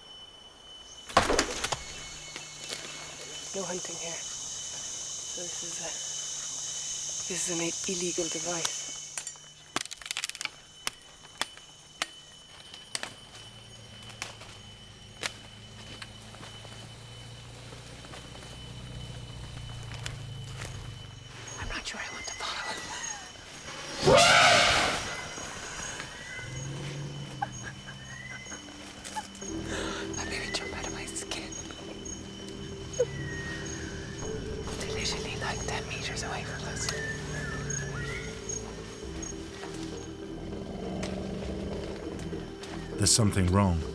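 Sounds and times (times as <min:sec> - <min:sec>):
high insect whine: 0:00.0 - 0:43.9
jungle birds calling: 0:00.8 - 0:43.9
wooden clicks and cracks: 0:09.2 - 0:12.2
elephant trumpeting: 0:23.9 - 0:27.6.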